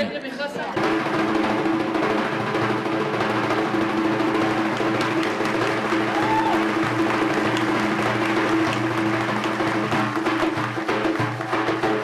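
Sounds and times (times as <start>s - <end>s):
frame drum played by hand: 0.8s - 12.0s.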